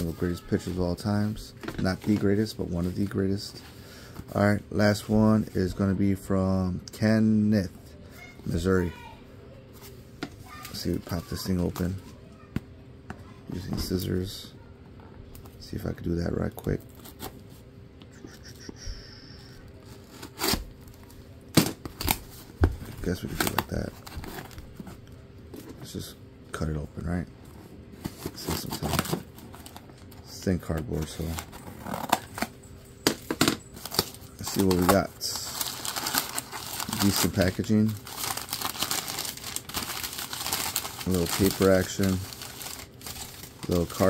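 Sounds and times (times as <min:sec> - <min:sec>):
packing paper rustling and crackling: 0:00.0 - 0:04.4, 0:19.8 - 0:26.0, 0:27.6 - 0:44.0
cardboard ripping and scraping: 0:20.0 - 0:20.7, 0:28.0 - 0:29.8, 0:31.0 - 0:32.5, 0:33.5 - 0:44.0.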